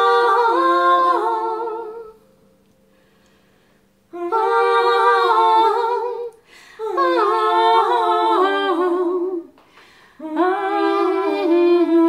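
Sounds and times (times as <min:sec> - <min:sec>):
women singing in harmony: 0:00.0 - 0:02.3, 0:04.1 - 0:12.0
singers breathing: 0:02.9 - 0:04.0, 0:06.4 - 0:06.8, 0:09.6 - 0:10.2.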